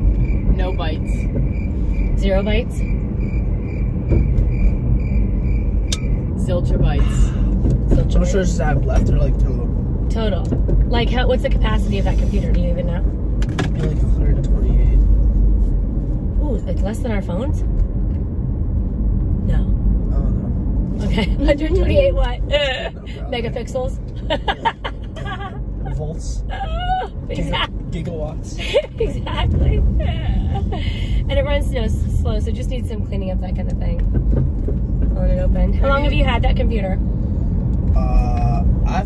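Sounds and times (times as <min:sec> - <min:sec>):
car road and engine rumble: 0:00.0 - 0:39.0.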